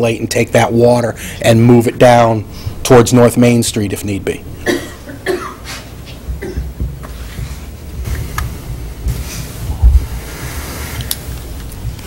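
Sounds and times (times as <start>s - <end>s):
low room rumble: 0.0s - 12.0s
person coughing: 4.6s - 6.8s.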